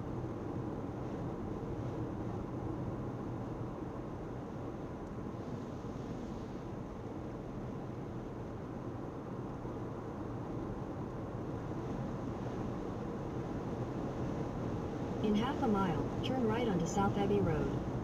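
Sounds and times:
car cruising road and engine noise: 0:00.0 - 0:18.0.

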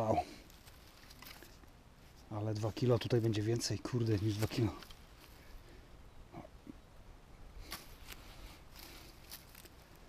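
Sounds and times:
dry grass rustling: 0:00.0 - 0:06.0, 0:07.5 - 0:10.0.

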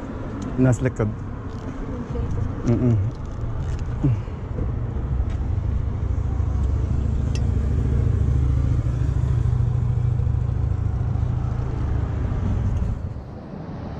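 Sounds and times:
car engine idling: 0:02.2 - 0:13.2.

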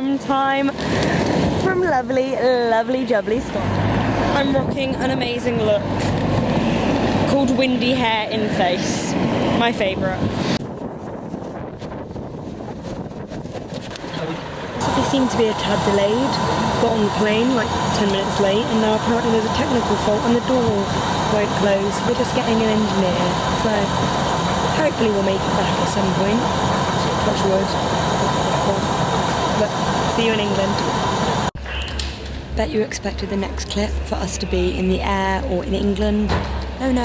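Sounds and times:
wind buffeting microphone: 0:00.0 - 0:31.5
airplane cabin drone: 0:00.0 - 0:37.0
faint steady whine: 0:13.9 - 0:37.0.

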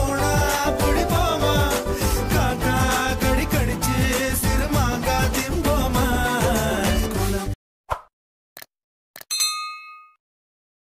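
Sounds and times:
bell ding: 0:09.3 - 0:10.2.

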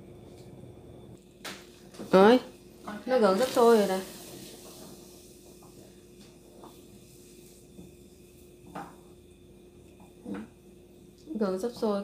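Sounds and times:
gas burner hissing: 0:00.0 - 0:12.0
spatula stirring in saucepan: 0:02.6 - 0:09.1.

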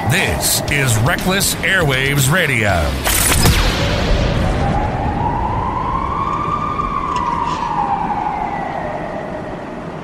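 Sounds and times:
siren wailing: 0:00.0 - 0:02.7, 0:03.9 - 0:10.0
low rumbling noise: 0:00.0 - 0:10.0.

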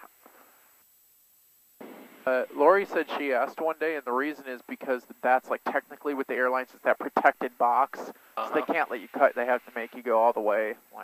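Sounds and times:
faint steady hiss: 0:00.0 - 0:11.0
person speaking: 0:02.3 - 0:11.0.

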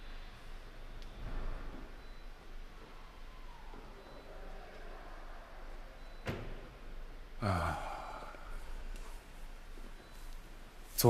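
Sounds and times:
man sighing heavily: 0:07.4 - 0:09.0.

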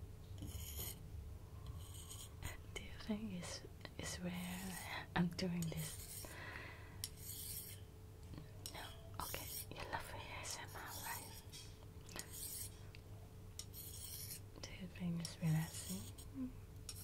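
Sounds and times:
person whispering: 0:02.5 - 0:06.0, 0:08.7 - 0:11.3, 0:14.6 - 0:16.5.

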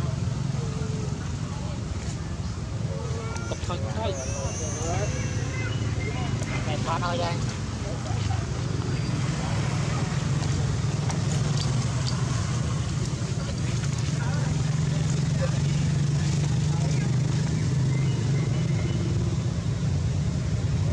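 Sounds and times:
motor engine rumbling: 0:00.0 - 0:20.9.

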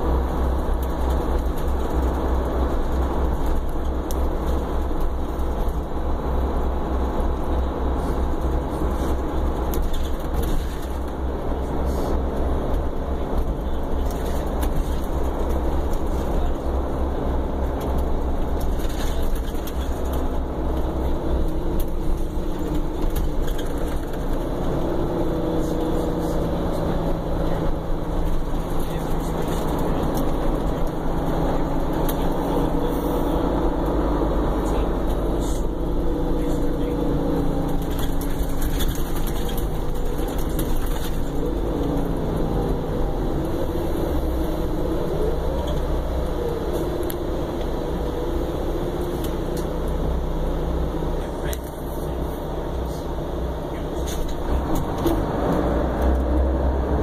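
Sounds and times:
bus diesel engine: 0:00.0 - 0:57.0
road rumble: 0:00.0 - 0:57.0.

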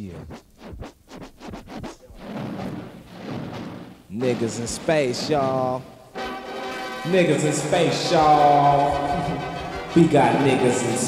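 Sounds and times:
record scratching on turntable: 0:00.0 - 0:06.2, 0:07.0 - 0:11.0
music: 0:04.2 - 0:11.0.

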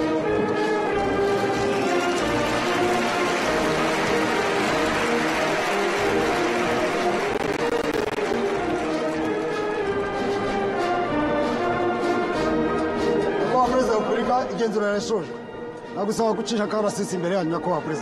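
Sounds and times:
ceremonial band music: 0:00.0 - 0:18.0.

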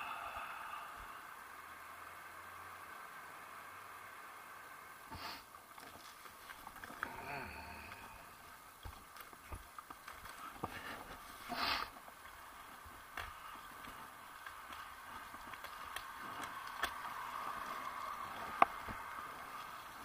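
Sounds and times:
road and wind noise: 0:00.0 - 0:20.0
bicycle clicks and rattles: 0:11.9 - 0:20.0.

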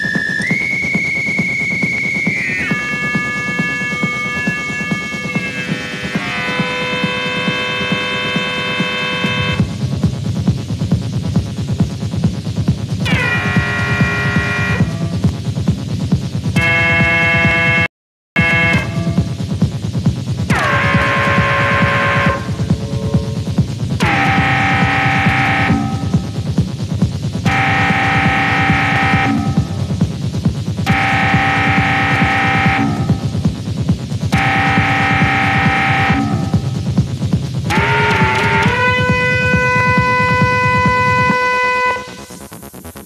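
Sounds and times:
rumbling low kick drum pattern: 0:00.0 - 0:43.0
held synth tone: 0:20.5 - 0:26.4, 0:30.9 - 0:33.4, 0:37.7 - 0:42.5.

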